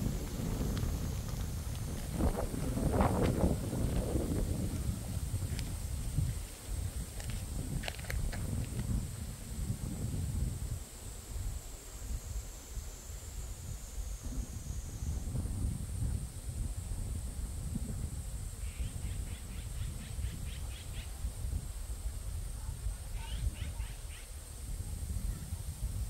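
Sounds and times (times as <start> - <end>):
steady high hiss: 0.0 - 26.0.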